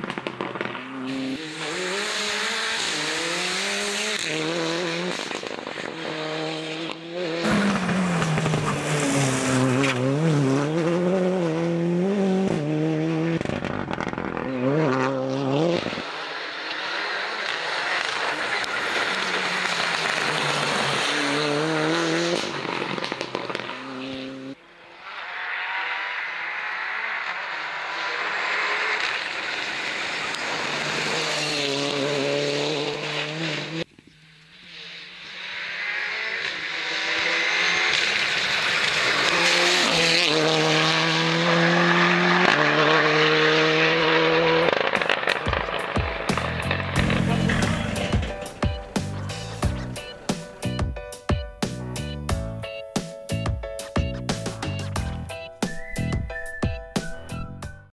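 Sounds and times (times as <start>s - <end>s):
car engine revving and shifting gear: 0.0s - 50.8s.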